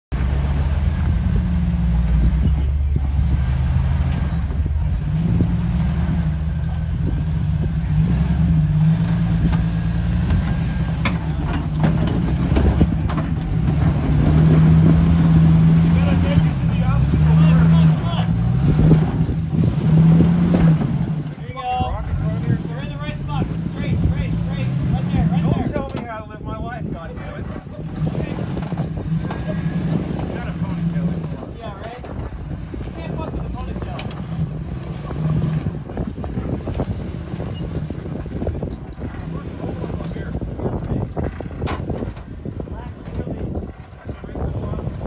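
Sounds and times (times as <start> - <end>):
car engine revving: 0.1 - 26.6, 27.4 - 45.0.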